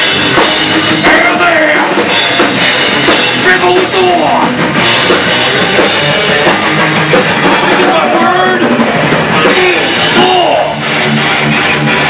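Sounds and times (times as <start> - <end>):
distorted electric guitars: 0.0 - 12.0
pounding drum kit: 0.0 - 12.0.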